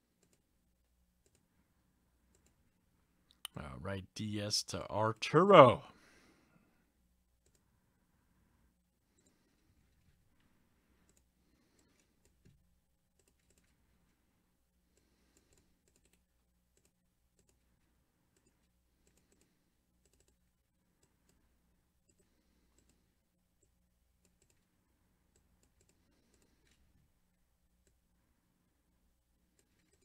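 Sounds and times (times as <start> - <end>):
computer mouse clicks: 0.2 - 0.5, 1.2 - 1.5, 2.3 - 2.6, 7.4 - 7.7, 11.0 - 13.8, 14.9 - 17.7, 18.3 - 24.7, 25.3 - 26.8, 27.8 - 28.0, 29.5 - 30.0.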